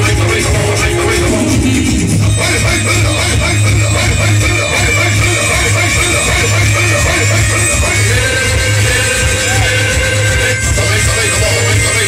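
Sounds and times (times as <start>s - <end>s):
loud music with heavy bass beat: 0.0s - 12.0s.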